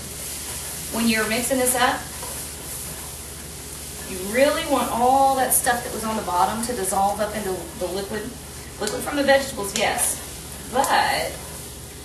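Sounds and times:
vegetables sizzling in a pot: 0.0 - 12.0.

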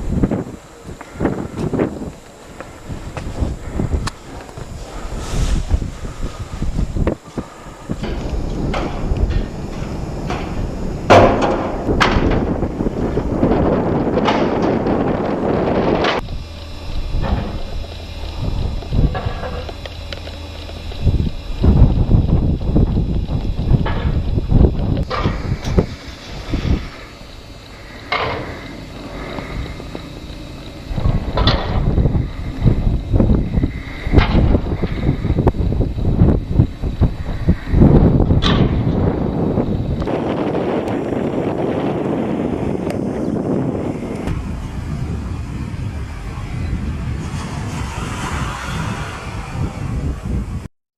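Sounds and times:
wind buffeting microphone: 0.0 - 50.7
sharp knocks: 11.1 - 12.4.

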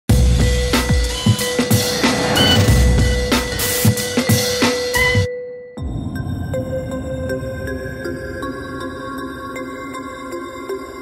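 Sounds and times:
electronic music with drum beat: 0.1 - 6.2.

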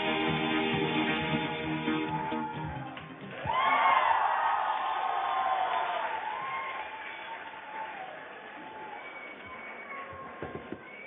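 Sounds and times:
audience cheering: 0.5 - 11.0
high drawn-out whoops: 1.9 - 11.0
whistles: 8.6 - 11.0.

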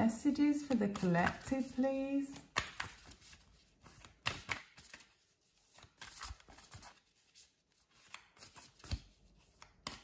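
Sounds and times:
cards being shuffled by hand: 0.6 - 10.0.

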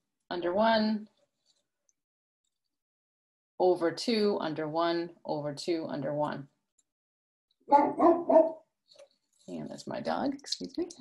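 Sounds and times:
dog barking: 7.7 - 8.6.

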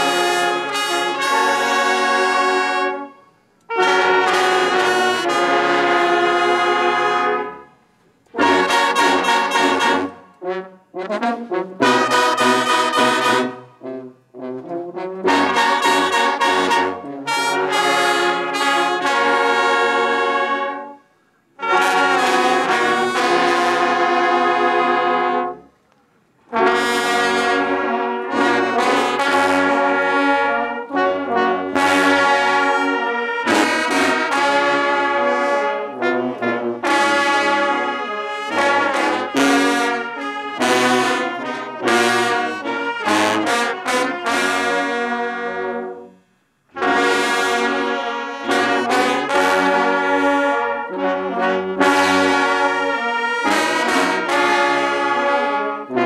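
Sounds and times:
brass band playing slow tune: 0.0 - 56.0.

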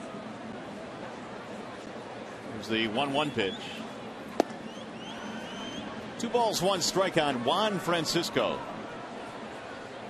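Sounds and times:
crowd noise: 0.0 - 10.0
ball smacking into mitt: 4.4 - 4.6
faint rising whistles: 4.6 - 6.0.

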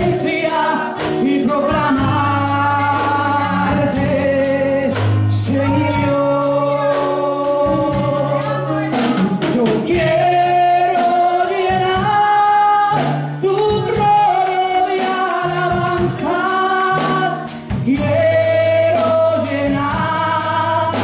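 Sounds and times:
accompanying music with percussion: 0.0 - 21.0
woman singing into a microphone: 0.0 - 21.0.

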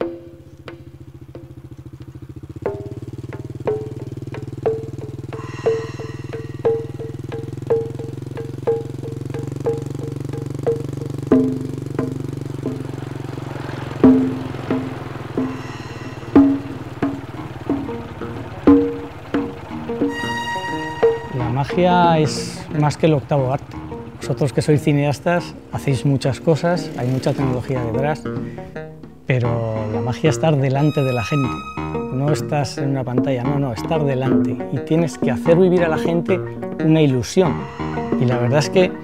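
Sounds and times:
wood-block-like percussive strikes: 0.0 - 26.1, 26.8 - 36.8, 37.4 - 39.0
low rumbling drone: 0.0 - 33.1, 36.3 - 39.0
high shimmer: 5.4 - 7.3, 20.0 - 22.8, 37.5 - 39.0.

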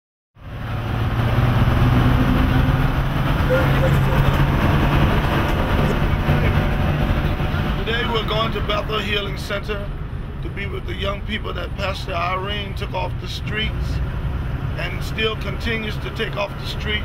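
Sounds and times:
bus engine droning: 0.4 - 17.0
road noise: 0.4 - 17.0.

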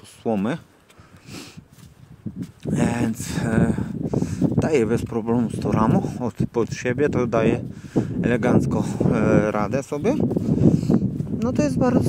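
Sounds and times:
man speaking: 0.0 - 0.7, 2.7 - 4.0, 4.6 - 10.3.

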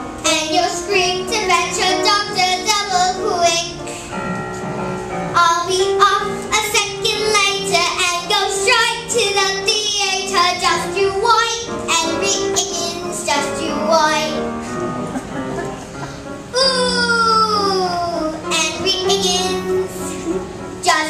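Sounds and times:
instrumental accompaniment: 0.0 - 21.0
girl singing: 0.2 - 3.9, 5.3 - 14.5, 16.5 - 21.0.

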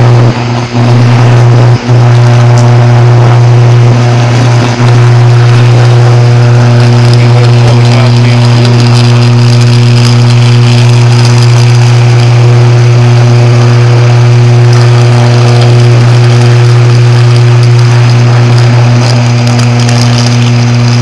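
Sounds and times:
power line electrical buzz: 0.0 - 21.0.

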